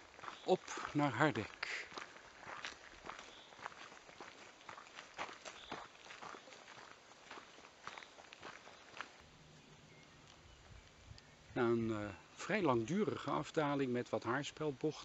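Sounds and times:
footsteps on dirt track: 0.0 - 11.0.

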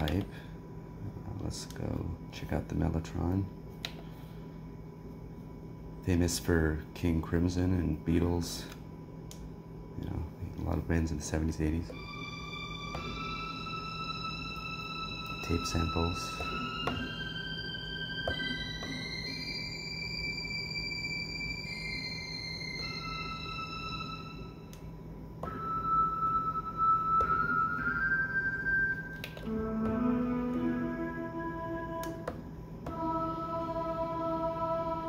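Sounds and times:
slow held synth notes: 10.0 - 35.0.

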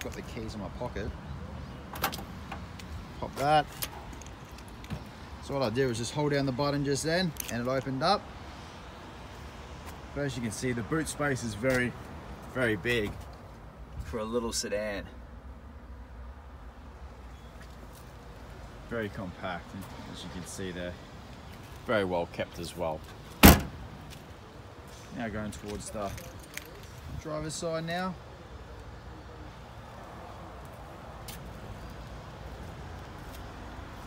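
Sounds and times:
road traffic hum: 0.0 - 34.0.

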